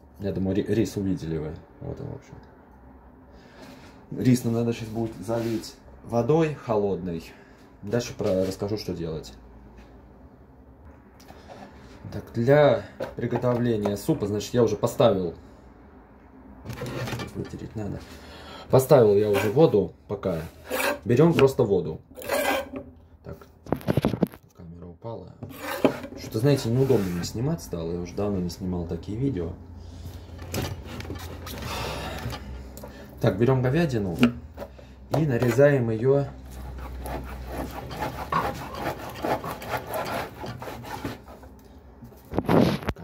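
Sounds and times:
rubbing against microphone: 25.5 - 27.4, 36.4 - 41.5, 42.2 - 43.0.

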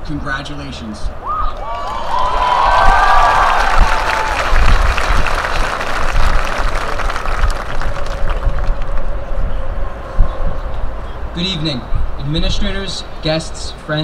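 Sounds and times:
cheers and whoops: 1.2 - 5.4
crowd applauding: 1.6 - 9.4.

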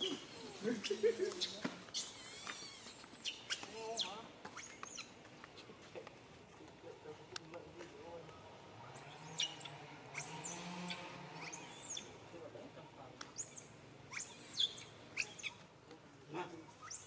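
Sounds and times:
high-pitched chirping squeaks: 0.0 - 5.2, 8.9 - 12.2, 13.3 - 15.6, 16.7 - 17.0.

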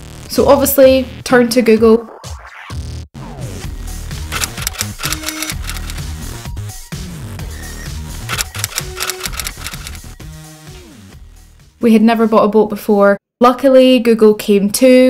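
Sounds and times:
background music: 3.2 - 12.5
typewriter key clacks: 4.3 - 6.0, 8.3 - 10.0.

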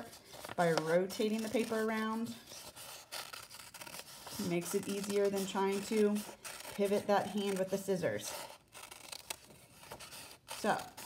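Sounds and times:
paper rustling: 0.0 - 11.0
scissors cutting paper: 0.0 - 11.0.

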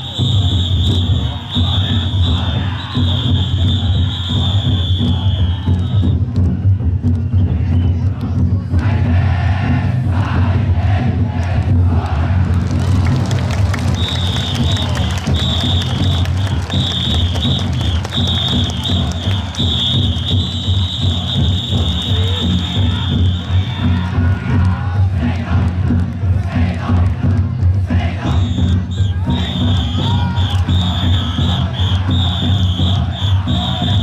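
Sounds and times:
shrill whistle: 0.0 - 8.0, 13.9 - 23.9, 28.3 - 34.0
crowd cheering and shouting: 0.0 - 34.0
taiko drums beating rapidly: 0.0 - 34.0.

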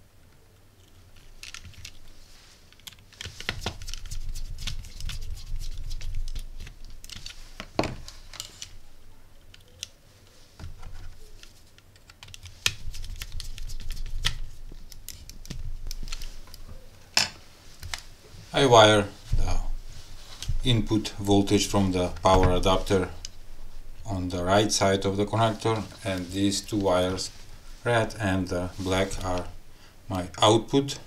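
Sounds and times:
handling bumps of board and wires: 7.6 - 8.5.

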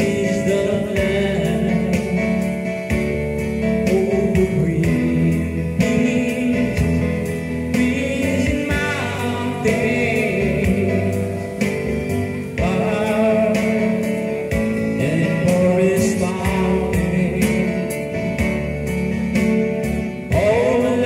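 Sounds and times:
backing track with steady beat: 0.0 - 21.0
man singing into microphone: 0.0 - 21.0.

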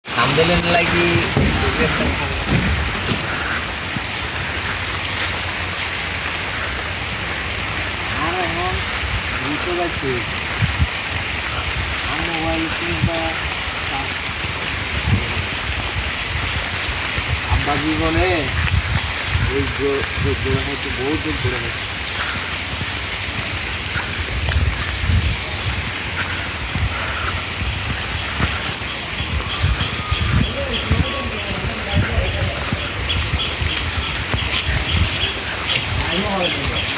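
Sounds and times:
steady rain: 0.0 - 36.9.

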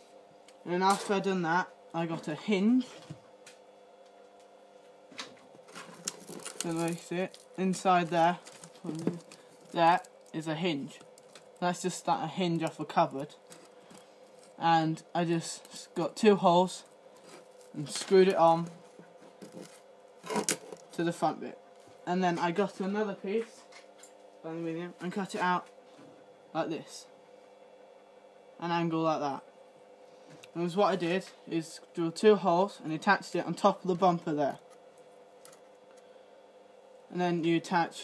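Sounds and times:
faint room hum: 0.0 - 38.0.

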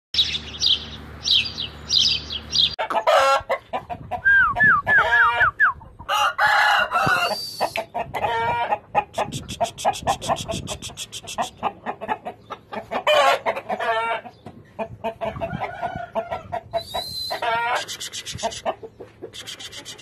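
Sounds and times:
rooster clucking: 2.7 - 20.0
rooster crowing: 4.9 - 7.7, 15.4 - 16.5.

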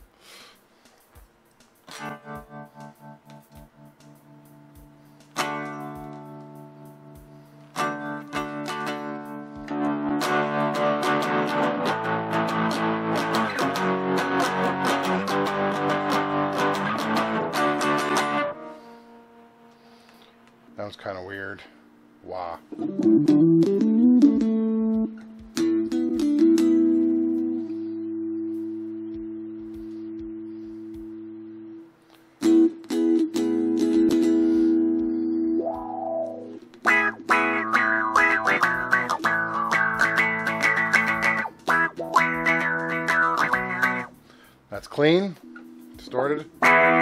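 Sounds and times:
electric guitar with wah effect: 1.0 - 20.5, 22.6 - 47.0.

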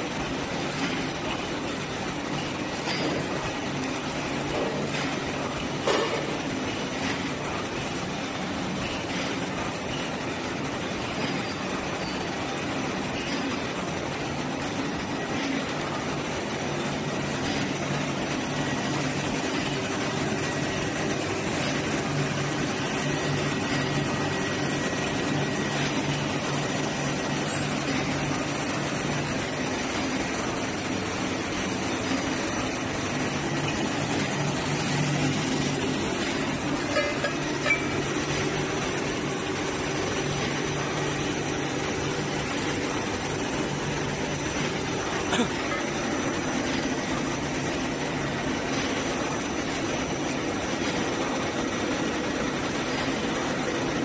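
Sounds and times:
printing machine drone: 0.0 - 54.0.

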